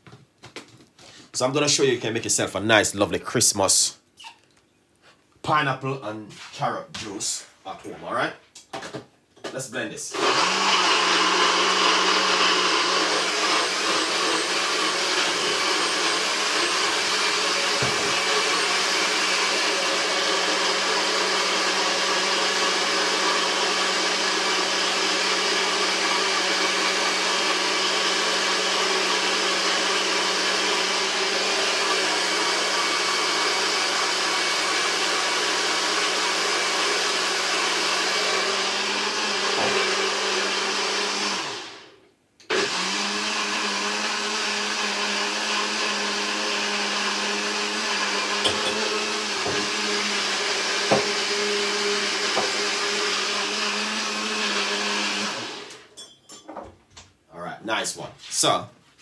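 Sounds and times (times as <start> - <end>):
blender motor running: 10.1 - 55.9.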